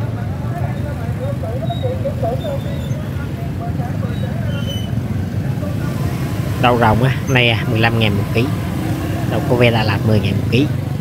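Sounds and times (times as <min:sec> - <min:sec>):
faint chatter of people: 0:00.0 - 0:11.0
motorbike engine running: 0:00.7 - 0:11.0.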